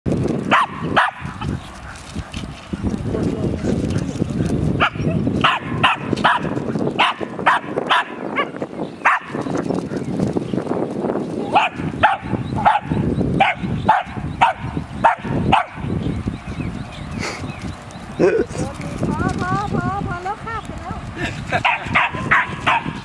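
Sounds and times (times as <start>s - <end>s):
dog barking in sharp yaps: 21.6s - 23.0s.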